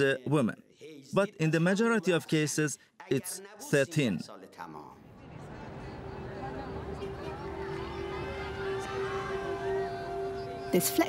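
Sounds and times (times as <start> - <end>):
outdoor street noise: 4.4 - 11.0.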